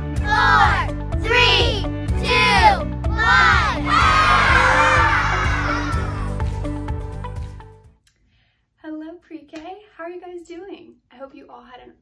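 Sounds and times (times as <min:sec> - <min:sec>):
bouncy children's music: 0:00.0 - 0:07.8
children shouting and cheering: 0:00.2 - 0:06.7.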